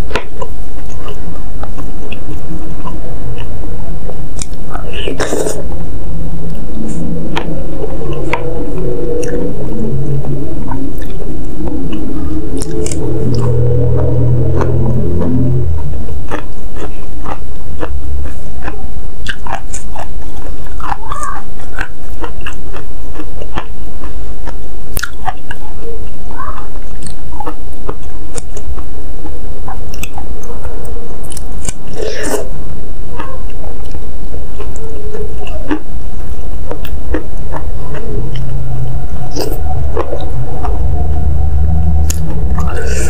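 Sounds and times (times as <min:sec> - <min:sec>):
wet mouth clicks: 0:04.3 - 0:05.6, 0:12.6 - 0:14.7, 0:16.2 - 0:25.6, 0:26.9 - 0:28.9, 0:31.3 - 0:32.5
chewing noodles: 0:16.2 - 0:32.5, 0:33.1 - 0:38.5.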